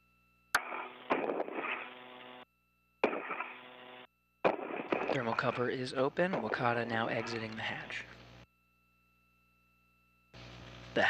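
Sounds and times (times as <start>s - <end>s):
radio static and hum: 0.6s - 2.4s, 3.0s - 8.5s, 10.4s - 11.0s
radio keying click: 6.3s - 8.3s.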